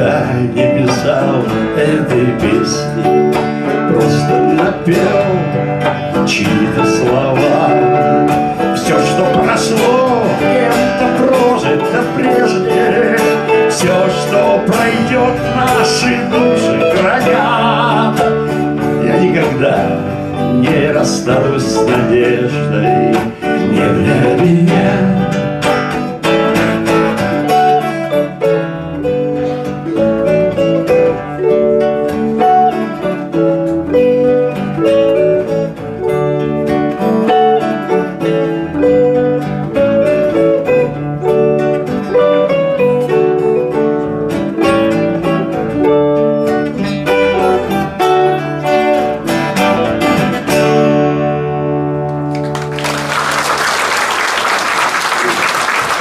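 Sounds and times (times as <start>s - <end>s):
guitar trio playing: 0.0s - 56.0s
audience applause: 52.2s - 56.0s.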